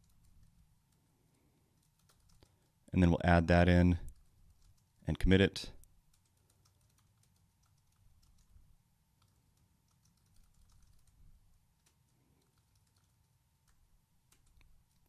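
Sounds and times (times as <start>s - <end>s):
soft keyboard typing: 0.0s - 2.9s, 3.6s - 15.0s.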